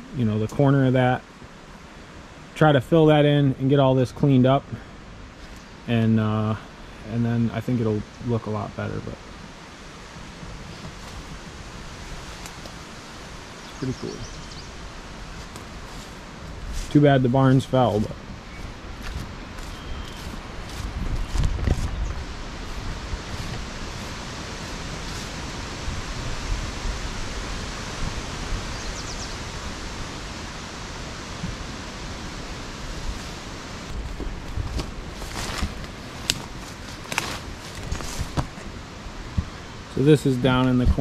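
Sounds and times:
wind and leaves hiss: 0.0 - 41.0
wind gusts on microphone: 7.5 - 41.0
brush rustling and snapping: 10.7 - 11.5, 12.1 - 12.9, 15.1 - 17.0, 17.9 - 25.6, 33.0 - 38.7.

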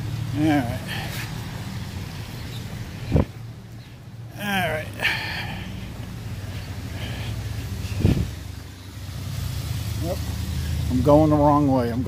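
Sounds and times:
car traffic on wet street: 0.0 - 12.0.

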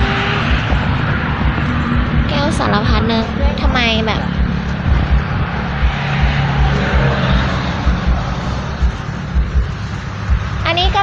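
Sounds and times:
passing traffic engine hum: 0.0 - 11.0
wind rumbling on microphone: 0.0 - 11.0.

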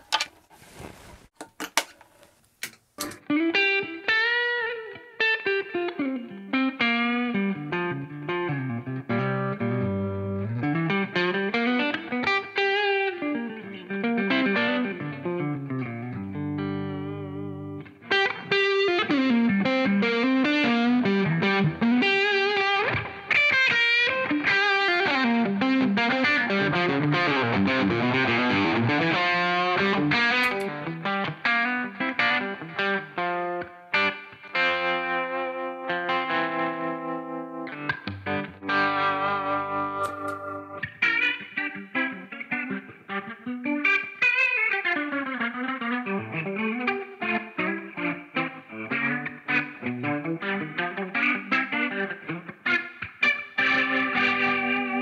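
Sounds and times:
electric guitar playing: 3.0 - 55.0.

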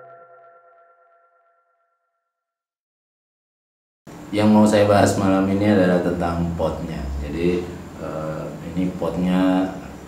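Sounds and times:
electronic jingle chord ringing: 0.0 - 2.2.

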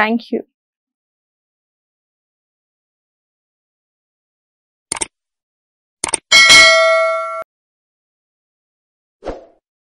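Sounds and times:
short clicks: 4.9 - 5.1, 6.0 - 6.2
notification bell ding: 6.3 - 7.4.

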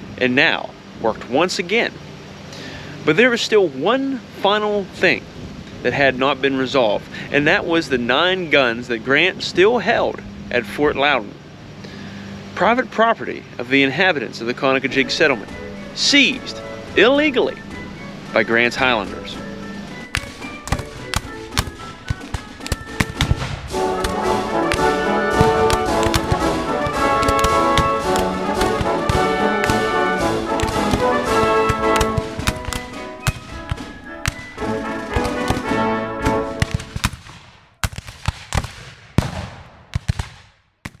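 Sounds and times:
dramatic background music: 15.2 - 37.1
musket gunshots: 20.0 - 41.0.

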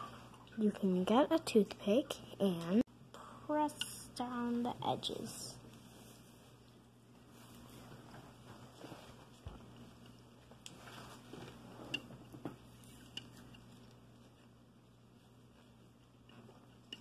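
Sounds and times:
low steady hum: 0.0 - 17.0
toothpick ticking and scraping bread: 12.7 - 17.0.

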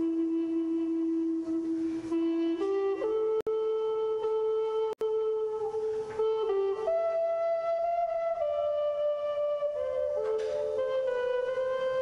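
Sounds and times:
wooden flute melody: 0.0 - 12.0.

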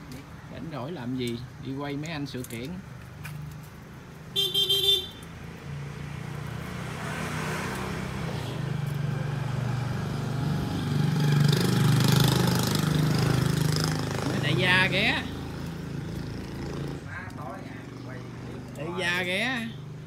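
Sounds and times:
vehicle horn toot: 4.3 - 5.2.

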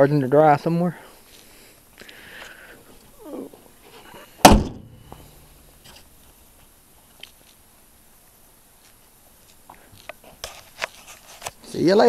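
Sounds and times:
car hood slamming shut: 4.4 - 5.1.

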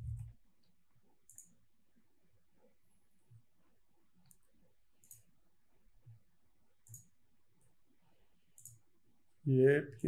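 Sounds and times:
computer mouse clicks: 0.0 - 1.6, 4.2 - 5.3, 6.8 - 7.2, 8.5 - 8.9.

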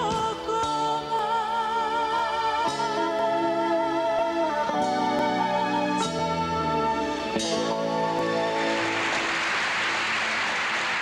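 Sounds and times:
audience applauding: 8.5 - 11.0.

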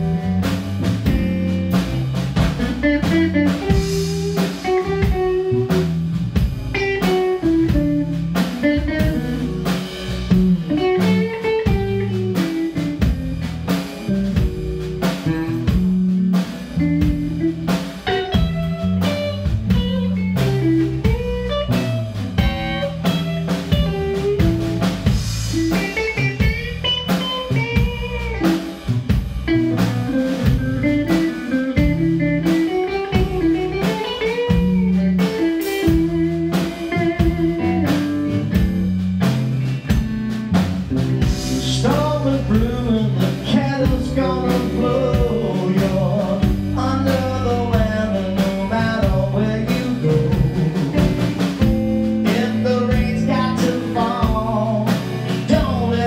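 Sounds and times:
bass guitar: 0.0 - 56.0
drum kit: 0.0 - 56.0
electric guitar bending notes: 0.0 - 56.0.

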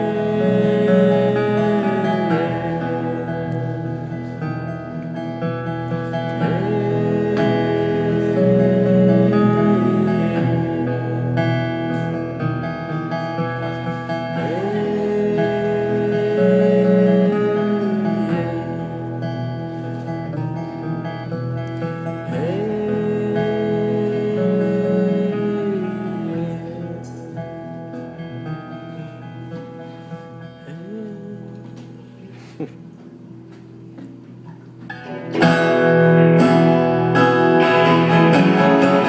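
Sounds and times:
acoustic guitar music: 0.0 - 39.0.

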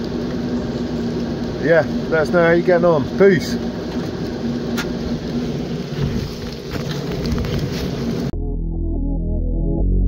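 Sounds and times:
diesel engine idling: 0.0 - 8.3.

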